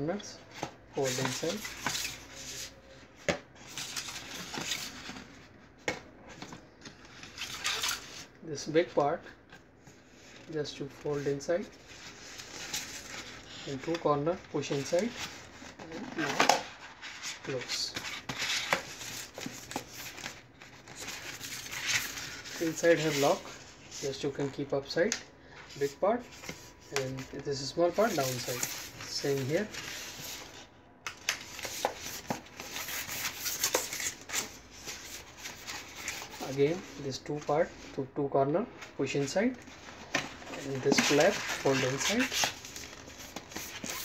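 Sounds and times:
card rustling and rubbing: 0.5s - 8.3s, 9.5s - 24.6s, 25.6s - 37.9s, 38.8s - 44.0s
card rubbing and scraping: 14.7s - 24.5s, 25.8s - 30.6s, 39.6s - 44.0s
cardboard crackling: 25.8s - 37.0s, 38.8s - 44.0s
card crackle: 39.6s - 44.0s.

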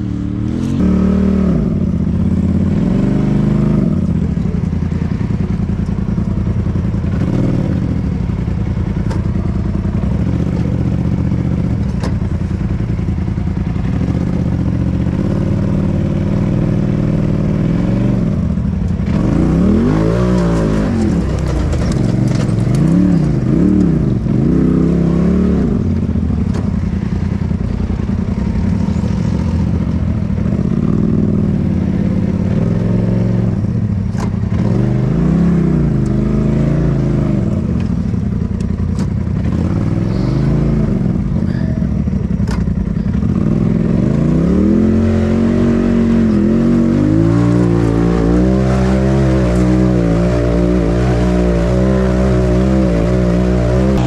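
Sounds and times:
engine running and revving: 0.0s - 54.0s.

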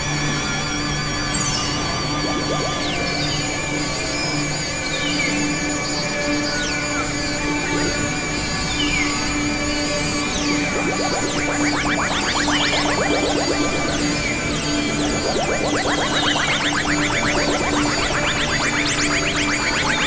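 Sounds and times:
electronic drone music: 1.3s - 4.2s, 7.9s - 20.0s.

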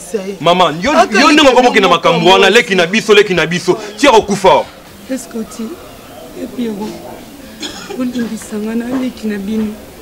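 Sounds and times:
quiet conversational speech: 0.0s - 10.0s
person coughing: 7.6s - 8.3s.

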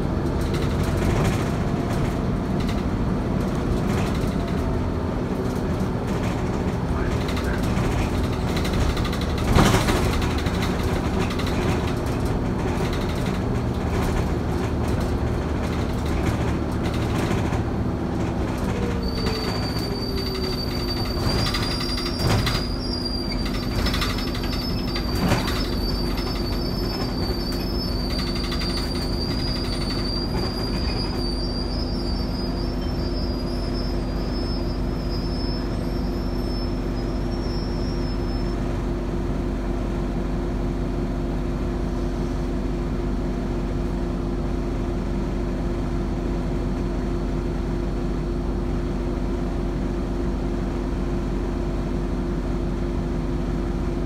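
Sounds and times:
bus body rattles and knocks: 0.0s - 54.0s
bus engine drone: 0.0s - 54.0s
thin high-pitched squeal: 18.9s - 38.6s.

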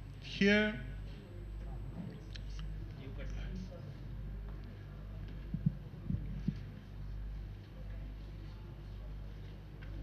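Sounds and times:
low hum: 4.1s - 8.2s
microphone handling thumps: 5.4s - 6.8s.

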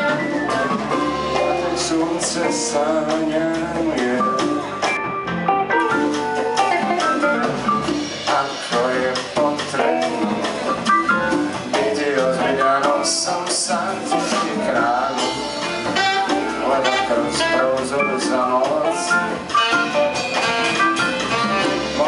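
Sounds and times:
guitar: 0.0s - 22.0s
live jazz band playing: 0.0s - 22.0s.

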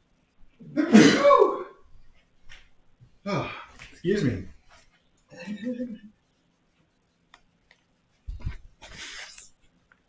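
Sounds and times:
hissing rustling noise: 8.0s - 9.8s.

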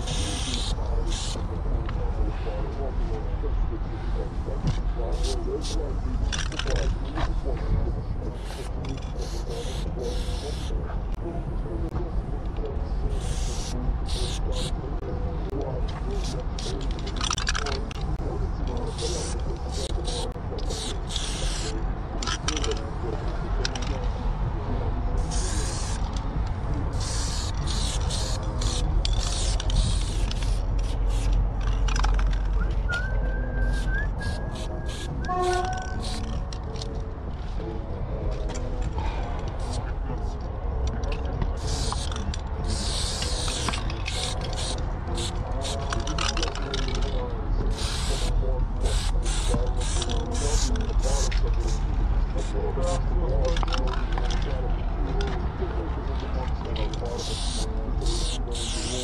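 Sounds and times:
spray paint can hissing: 0.0s - 1.4s, 8.4s - 10.7s, 13.1s - 14.7s, 18.9s - 21.8s, 25.2s - 26.0s, 26.9s - 31.3s, 33.6s - 35.1s, 35.7s - 36.3s, 41.6s - 45.8s, 47.7s - 48.3s, 48.9s - 51.3s, 57.2s - 59.0s.

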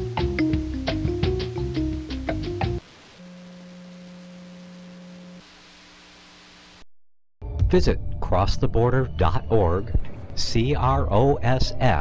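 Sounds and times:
faint hiss: 2.7s - 6.8s
higher electronic tone: 2.8s - 6.9s
low electronic tone: 2.8s - 6.9s.

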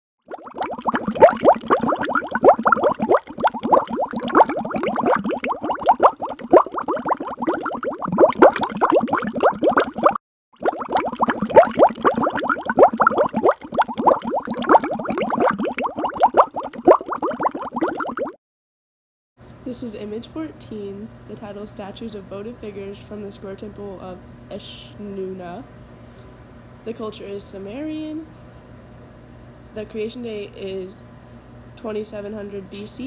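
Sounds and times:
loud dense bubbling and plopping: 0.2s - 18.4s.

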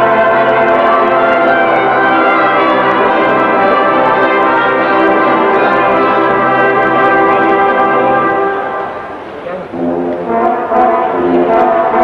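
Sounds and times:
brass fanfare band playing: 0.0s - 12.0s.

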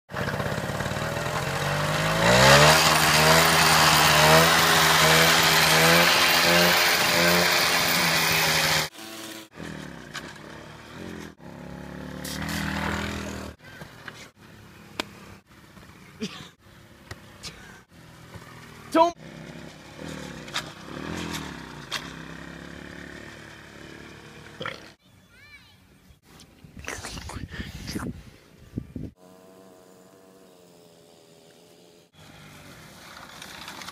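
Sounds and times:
moped two-stroke engine revving: 0.1s - 13.6s, 17.8s - 25.0s, 29.1s - 33.1s.

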